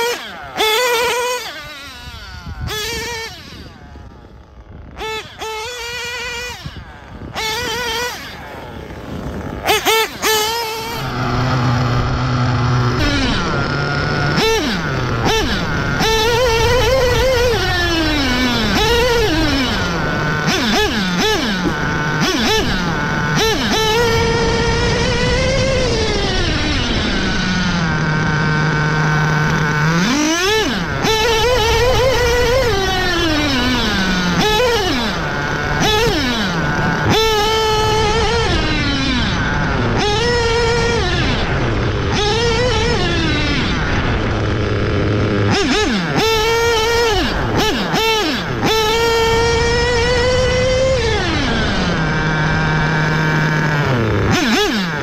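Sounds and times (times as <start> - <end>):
model truck engine revving: 0.0 - 55.0.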